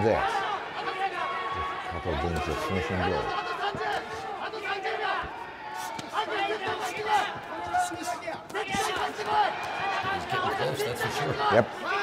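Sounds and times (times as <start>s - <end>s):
voices shouting in a hall: 0.0s - 12.0s.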